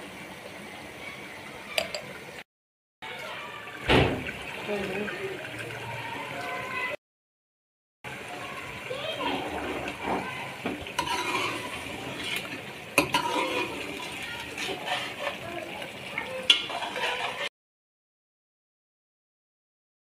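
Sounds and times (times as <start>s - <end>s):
metal spoon stirring in pan: 9.3s - 17.5s.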